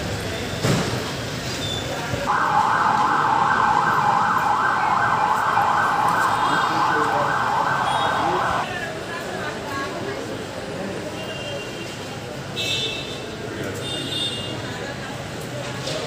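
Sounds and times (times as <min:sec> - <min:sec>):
emergency siren yelping: 0:02.3 - 0:08.7.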